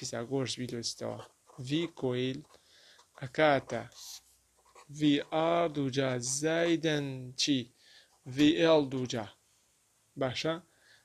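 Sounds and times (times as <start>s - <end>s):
man speaking: 0.0s - 2.5s, 3.2s - 4.2s, 4.8s - 7.7s, 8.3s - 9.4s, 10.2s - 10.7s
pen scratching on paper: 3.1s - 5.4s.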